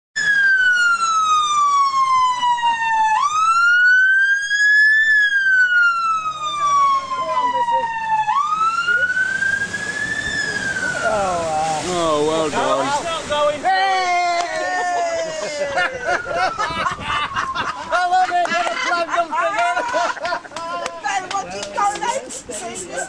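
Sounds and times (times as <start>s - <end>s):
police siren wailing: 0.2s - 12.8s, 13.6s - 19.0s.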